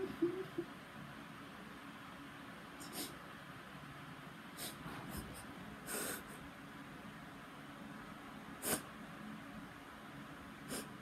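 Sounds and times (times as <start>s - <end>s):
person sniffing: 2.8s - 3.2s, 4.6s - 6.4s, 8.6s - 8.9s, 10.7s - 11.0s.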